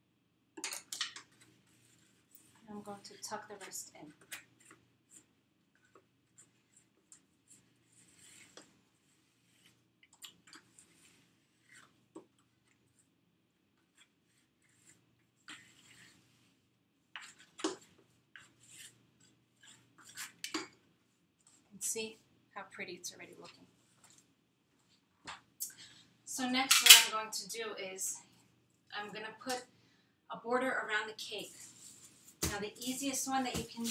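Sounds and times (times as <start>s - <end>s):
plastic smoother rubbing fondant: 1.2s - 22.3s, 31.2s - 33.9s.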